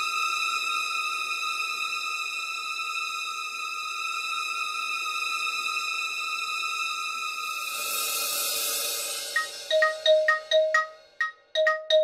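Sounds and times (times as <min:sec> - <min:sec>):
high held drone music: 0:00.0 - 0:11.2.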